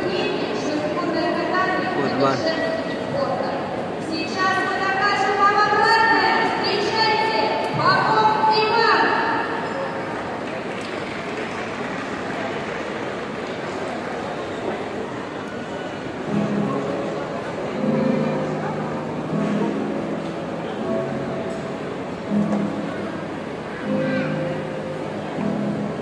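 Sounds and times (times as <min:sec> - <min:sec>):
echoing crowd hubbub: 0:00.0 - 0:26.0.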